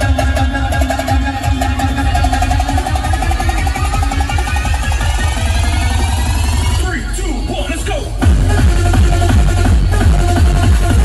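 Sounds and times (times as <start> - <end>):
loud electronic dance music: 0.0 - 11.0.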